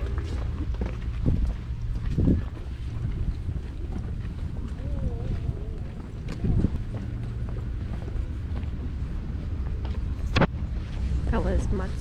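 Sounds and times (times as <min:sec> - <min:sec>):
footsteps on pavement: 0:00.0 - 0:12.0
wind rumble on microphone: 0:00.0 - 0:12.0.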